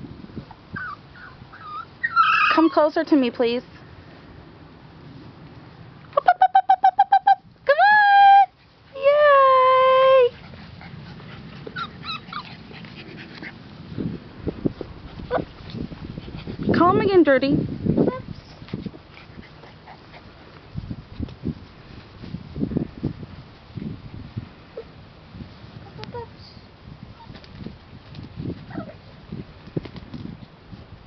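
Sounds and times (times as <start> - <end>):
puppies crying: 0.8 - 2.8, 11.6 - 12.8.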